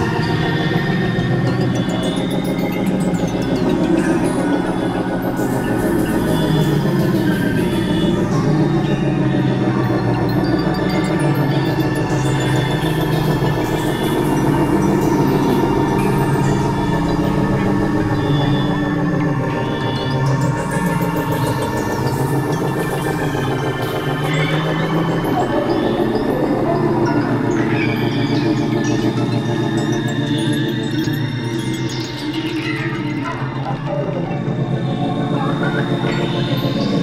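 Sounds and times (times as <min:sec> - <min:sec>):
experimental synthesizer drones: 0:00.0 - 0:37.0.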